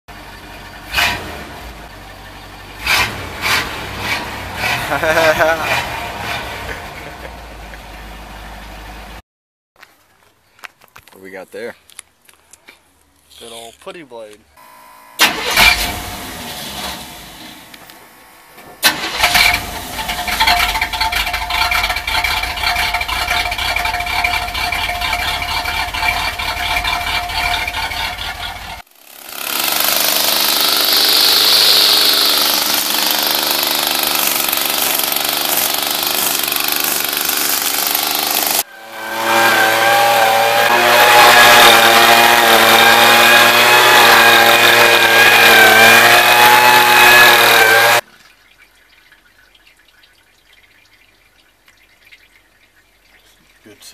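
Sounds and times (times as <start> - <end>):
truck engine starting and running: 0.1 - 9.2, 13.7 - 48.0
rock saw cutting stone: 2.9 - 6.6, 18.8 - 48.0.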